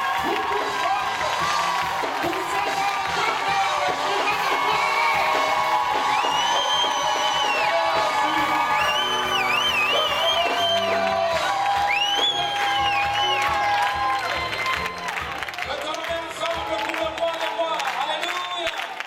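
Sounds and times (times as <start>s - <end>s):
congregation cheering: 0.0s - 19.0s.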